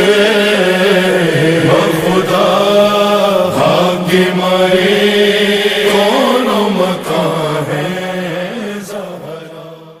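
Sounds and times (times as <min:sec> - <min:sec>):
man singing devotional song: 0:00.0 - 0:10.0.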